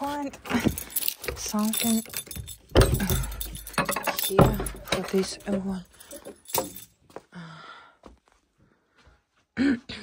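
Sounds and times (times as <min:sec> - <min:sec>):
keys jangling: 0:00.0 - 0:07.0
padlock and chain clinking: 0:00.0 - 0:07.1.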